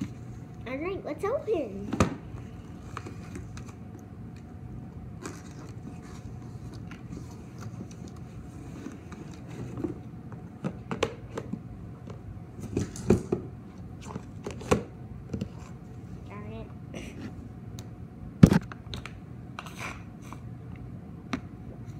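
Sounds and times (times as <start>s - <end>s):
steady low hum: 0.0s - 21.9s.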